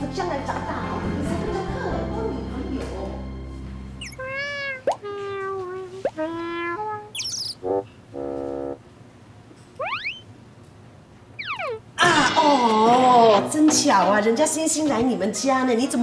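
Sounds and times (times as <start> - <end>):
cartoon descending held tones: 4.0 - 8.8, 9.8 - 10.3, 11.4 - 11.8
short buzzy notes: 6.1 - 8.8.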